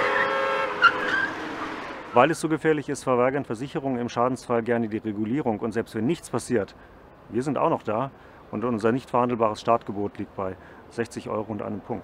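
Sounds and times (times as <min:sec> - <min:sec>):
cars passing: 0:00.0 - 0:02.6.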